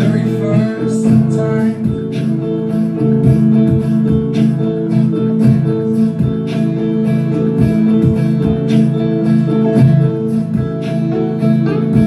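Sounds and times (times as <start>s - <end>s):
electric guitar strumming chords: 0.0s - 12.0s.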